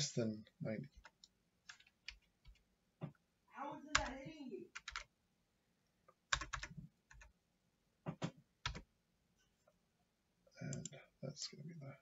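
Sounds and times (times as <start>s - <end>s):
computer keyboard keystrokes: 4.8s - 5.1s, 6.3s - 7.3s, 8.2s - 8.8s.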